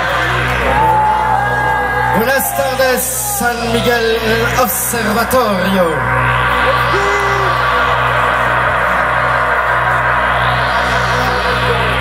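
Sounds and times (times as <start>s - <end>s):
synthesizer drone: 0.0s - 12.0s.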